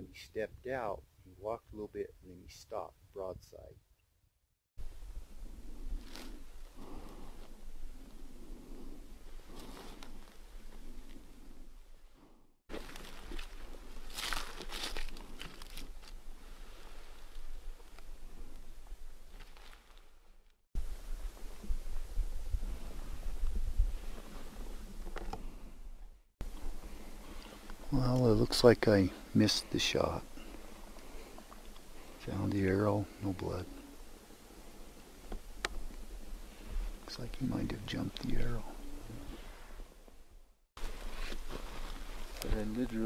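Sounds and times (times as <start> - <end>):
clothing and gear rustling: 5.6 - 12.0, 12.7 - 25.8, 40.8 - 43.0
footsteps crunching on gravel: 12.7 - 16.2.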